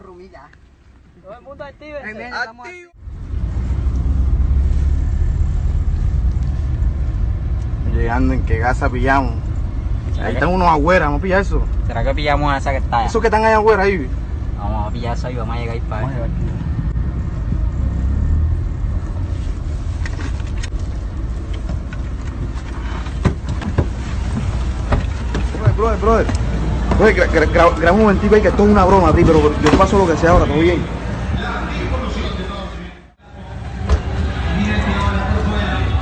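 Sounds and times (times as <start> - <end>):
car engine and road noise: 0.0 - 36.0.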